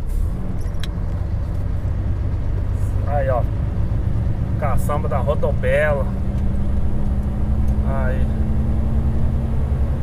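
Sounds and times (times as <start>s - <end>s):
diesel engine droning: 0.0s - 10.0s
road noise: 0.0s - 10.0s.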